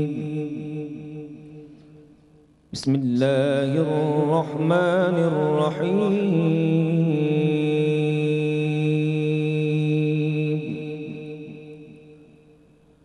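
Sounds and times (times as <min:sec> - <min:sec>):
man reciting melodically: 0:00.0 - 0:01.8, 0:02.7 - 0:12.2.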